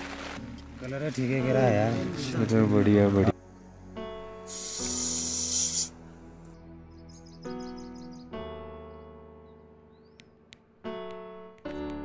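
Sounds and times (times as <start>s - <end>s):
slow piano music: 0.0s - 12.0s
loud hiss: 4.4s - 6.0s.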